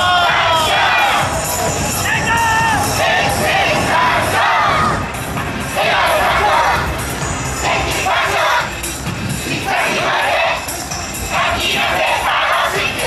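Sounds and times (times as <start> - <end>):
group shouting in unison: 0.0 - 1.3, 2.1 - 5.0
loud dance music: 0.0 - 13.0.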